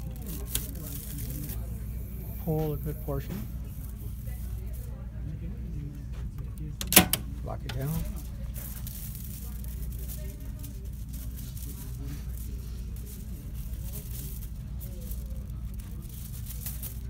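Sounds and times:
plastic film crinkling: 0:00.0 - 0:17.0
steady low hum: 0:00.0 - 0:17.0.

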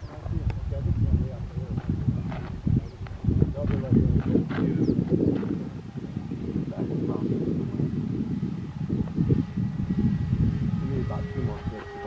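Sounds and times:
wind buffeting microphone: 0:00.0 - 0:12.0
model plane motors: 0:04.0 - 0:12.0.

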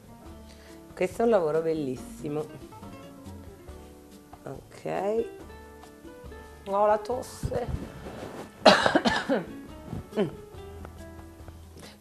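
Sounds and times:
person coughing: 0:08.6 - 0:10.4.

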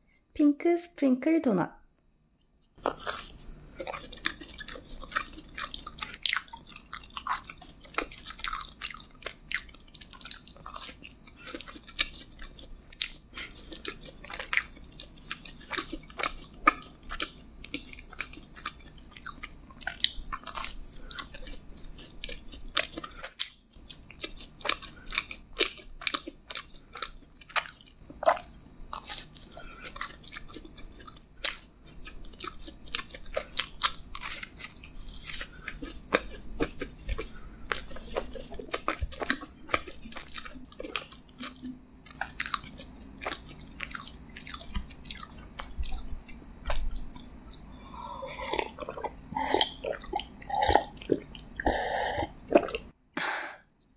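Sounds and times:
chewing mouth sounds: 0:02.3 - 0:52.9.

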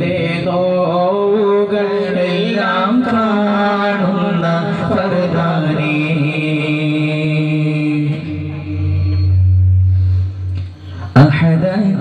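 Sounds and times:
voices chanting a prayer: 0:00.0 - 0:09.4.

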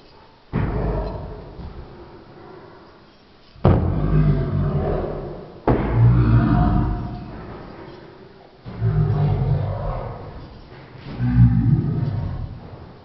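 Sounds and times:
roar sound effect: 0:00.5 - 0:02.8, 0:03.6 - 0:07.7, 0:08.6 - 0:13.0.

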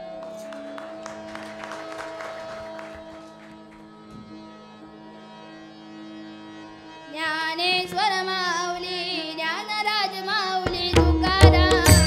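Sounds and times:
harmonium drone: 0:00.0 - 0:12.0.

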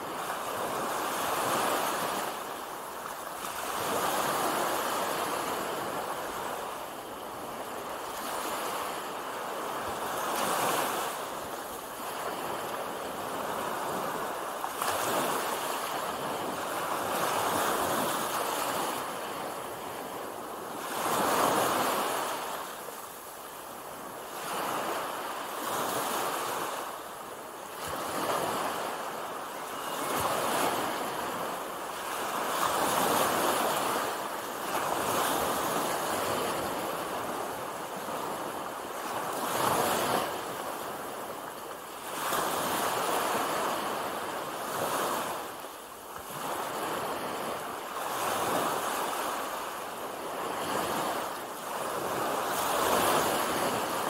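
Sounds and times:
small waves breaking on beach: 0:00.0 - 0:54.0.

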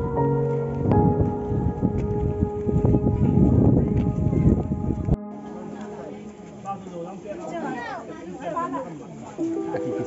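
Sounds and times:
chatter of voices: 0:02.8 - 0:10.0.

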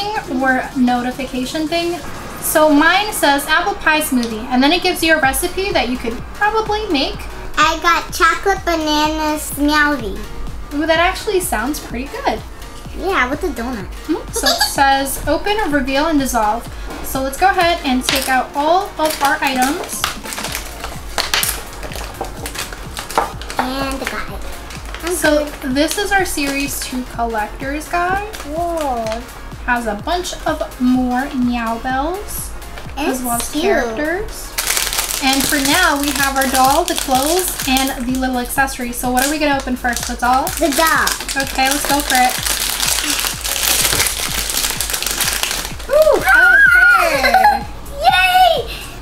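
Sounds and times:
background music: 0:00.0 - 0:49.0
plastic wrappers crinkling: 0:18.0 - 0:27.0, 0:34.5 - 0:46.4.

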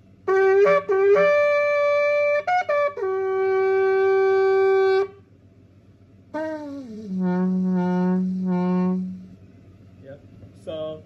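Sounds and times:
shofar blast: 0:00.2 - 0:05.2, 0:06.4 - 0:09.3.

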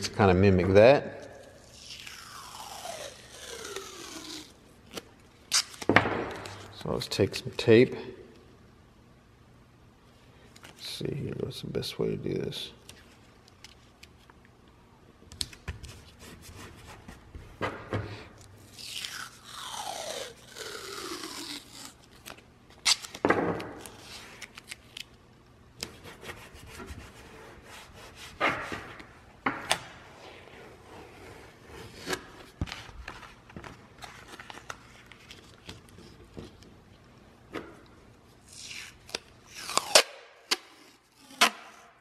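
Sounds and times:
tape crackling and rubbing: 0:01.4 - 0:06.8, 0:18.6 - 0:25.2, 0:30.2 - 0:37.0, 0:38.4 - 0:41.8.

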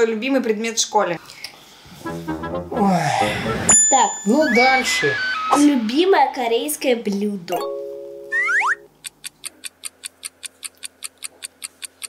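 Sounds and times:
held musical chord: 0:01.9 - 0:04.8
fast clock ticking effect: 0:09.0 - 0:12.0.

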